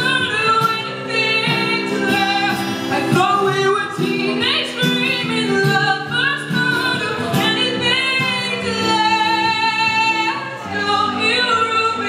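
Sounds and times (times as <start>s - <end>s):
acoustic guitar: 0.0s - 12.0s
woman singing: 0.0s - 12.0s.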